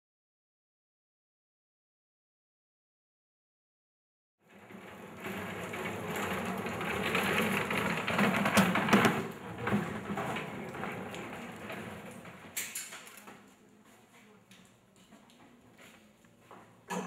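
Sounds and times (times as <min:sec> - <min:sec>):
casters rolling over concrete: 0:04.4 - 0:17.0.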